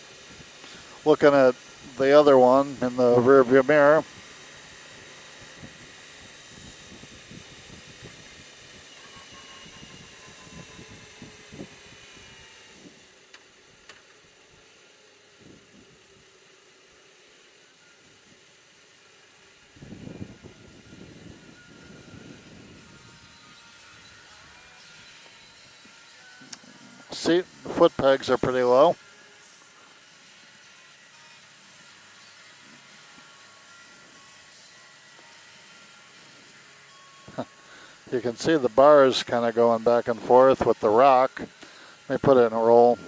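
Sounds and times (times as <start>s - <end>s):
motorcycle engine running: 0.0s - 14.6s, 18.0s - 28.8s
wind noise on microphone: 5.4s - 13.0s, 19.7s - 24.2s.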